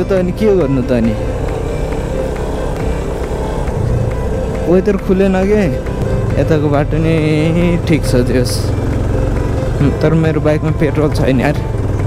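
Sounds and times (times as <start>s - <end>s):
motorcycle engine running: 0.0s - 12.0s
road noise on gravel: 0.0s - 12.0s.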